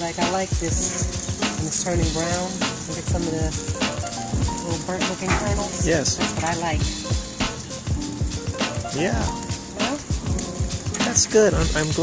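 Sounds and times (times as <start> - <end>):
background music with bass beat: 0.0 - 12.0
food sizzling on grill: 0.0 - 12.0.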